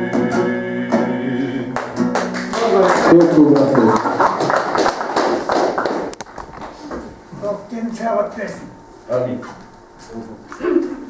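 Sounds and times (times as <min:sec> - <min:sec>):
man singing: 0:00.0 - 0:01.9.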